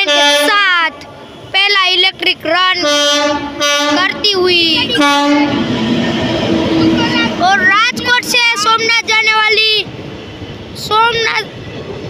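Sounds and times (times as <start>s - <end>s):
passenger train passing: 0.0s - 12.0s
train wheel rumble: 1.2s - 12.0s.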